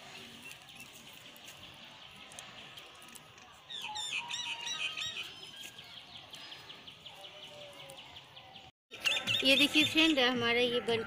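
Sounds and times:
birds chirping: 0.0s - 11.0s
bird warbling song: 3.7s - 10.4s.

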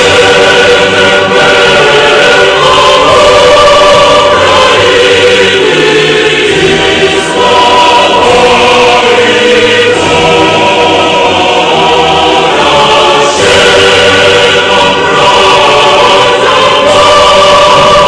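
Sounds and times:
choir singing sustained chords: 0.0s - 18.0s.

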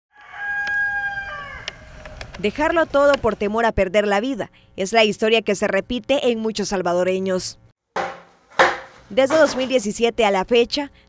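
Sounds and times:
rooster crowing: 0.1s - 2.2s.

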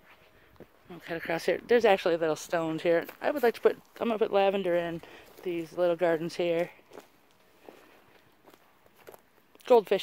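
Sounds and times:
footsteps on grass: 2.1s - 9.9s.

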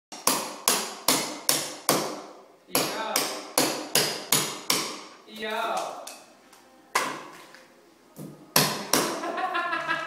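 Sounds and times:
hammer striking chisel: 0.1s - 5.1s, 8.5s - 9.2s.

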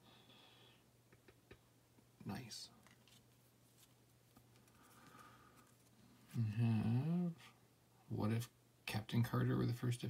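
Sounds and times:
murmured vocal sound: 6.3s - 7.5s.

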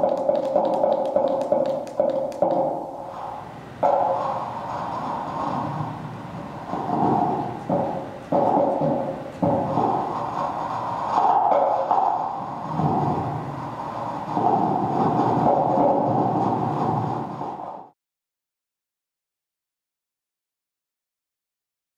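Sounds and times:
rumbling noisy electronic texture: 0.0s - 17.9s.

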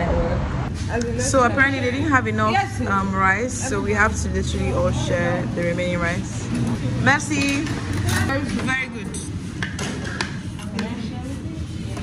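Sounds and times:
metal spoons clinking on plates: 6.5s - 11.0s.

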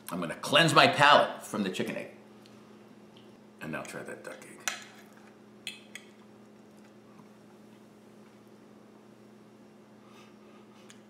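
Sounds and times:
faint room tone hum: 0.0s - 11.0s.

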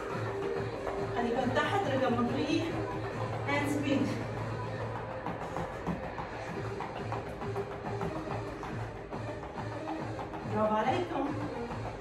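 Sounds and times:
upbeat workout music: 0.0s - 12.0s.

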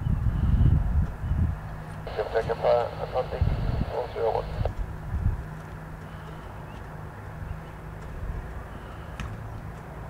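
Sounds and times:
wind: 0.0s - 10.0s
distant piston aircraft engines drone: 0.2s - 10.0s.

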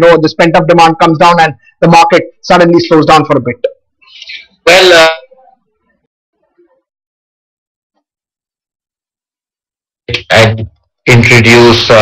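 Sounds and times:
man saying uh: 10.1s - 12.0s.

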